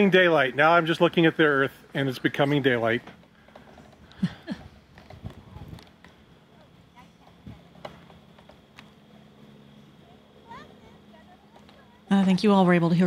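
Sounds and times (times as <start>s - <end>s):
faint voices: 0.0s - 8.7s, 9.3s - 13.0s.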